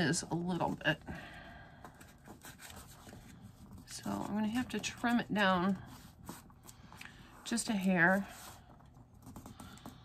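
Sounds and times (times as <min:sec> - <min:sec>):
paper rustling and rubbing: 0:01.9 - 0:10.0.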